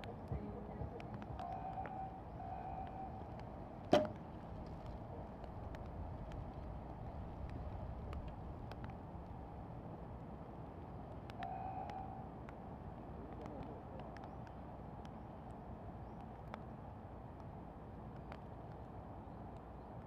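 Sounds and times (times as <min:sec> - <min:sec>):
outdoor background noise: 0:00.0 - 0:20.0.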